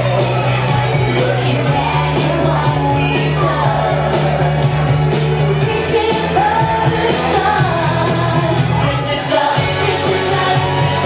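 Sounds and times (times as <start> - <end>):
pop song with sung vocal: 0.0 - 11.0.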